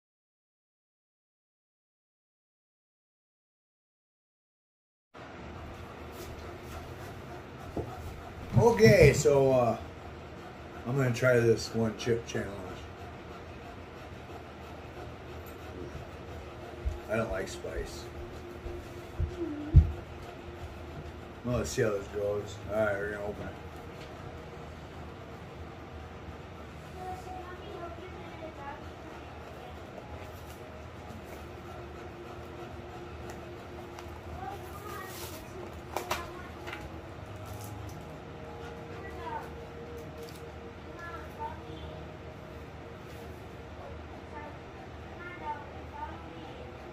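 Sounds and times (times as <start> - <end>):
low room hum: 5.2 - 46.9.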